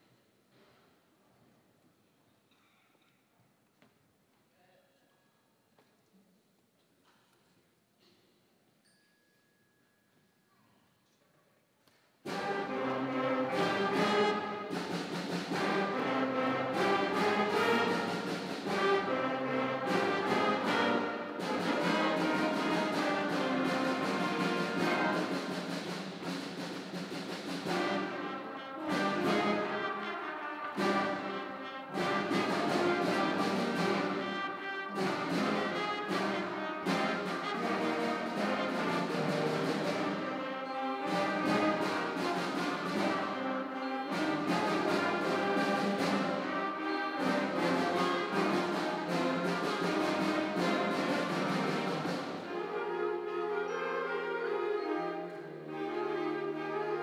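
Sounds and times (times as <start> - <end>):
concert band playing: 12.3 - 57.0.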